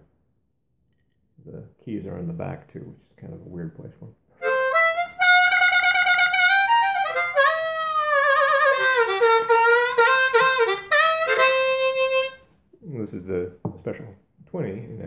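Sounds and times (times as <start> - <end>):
harmonica notes and chords: 4.4 - 12.5.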